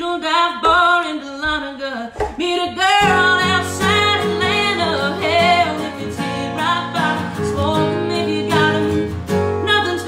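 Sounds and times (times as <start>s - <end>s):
woman singing: 0.0s - 10.0s
strummed acoustic guitar: 2.2s - 10.0s.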